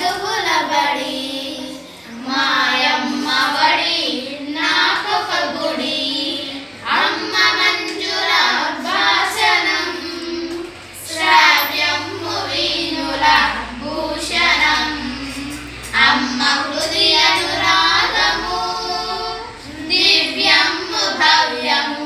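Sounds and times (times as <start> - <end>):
girls singing in unison: 0.0 - 22.0.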